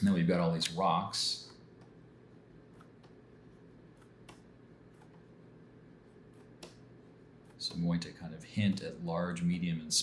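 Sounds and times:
soft mouse clicks: 3.9s - 5.2s, 6.3s - 7.8s.

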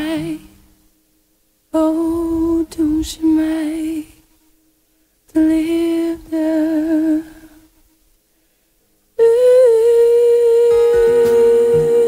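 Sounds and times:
woman singing long note: 9.2s - 12.0s
strummed acoustic guitar chord: 10.6s - 12.0s.

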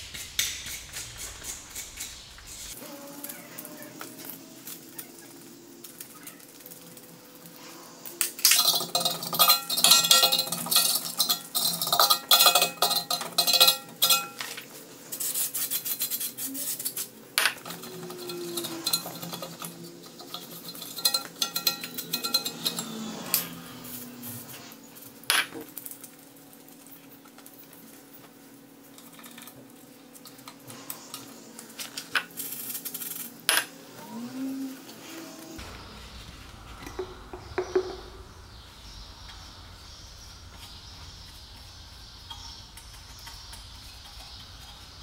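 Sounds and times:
metal tools clinking and scraping: 8.2s - 25.1s.

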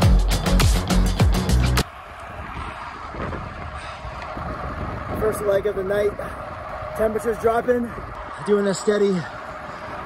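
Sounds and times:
road noise rumble: 0.0s - 10.0s
wind rushing over microphone: 2.1s - 8.6s.

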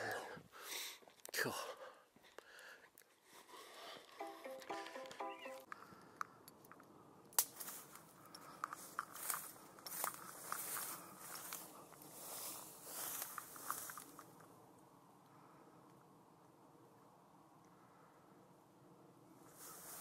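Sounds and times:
short pitched notes: 4.2s - 5.7s
rustling hiss with clicks: 8.7s - 14.5s.

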